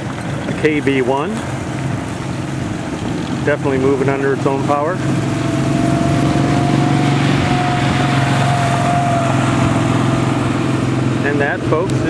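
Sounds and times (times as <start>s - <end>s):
vehicle engine running: 0.0s - 12.0s
thin whine: 3.4s - 12.0s.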